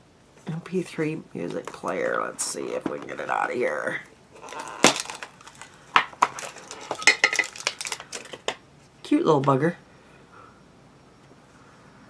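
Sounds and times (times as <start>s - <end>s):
plastic packaging clicking and rattling: 4.4s - 8.6s.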